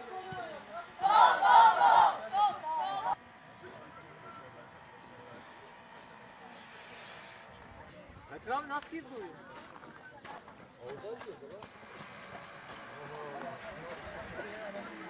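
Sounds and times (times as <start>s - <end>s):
faint outdoor background: 0.0s - 15.0s
young voices shouting: 0.3s - 3.2s.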